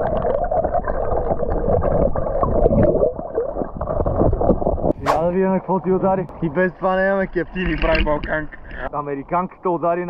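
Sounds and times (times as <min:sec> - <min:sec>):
muffled underwater river gurgling: 0:00.0 - 0:05.0.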